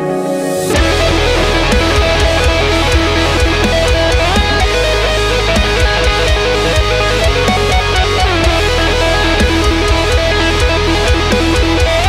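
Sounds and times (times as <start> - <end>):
distorted electric guitar lead: 0.0 - 12.0
metal backing track drums: 0.0 - 12.0
steady low bass: 0.8 - 12.0.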